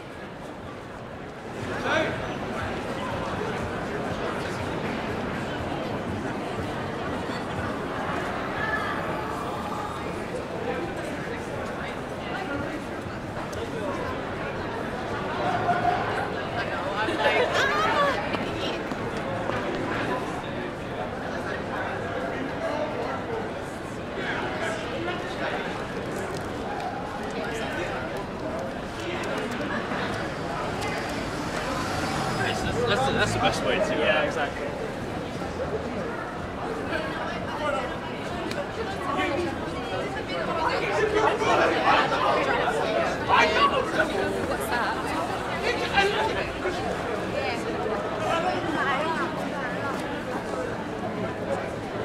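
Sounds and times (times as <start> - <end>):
murmur of voices: 0.0 - 52.0
passers-by talking: 0.0 - 52.0.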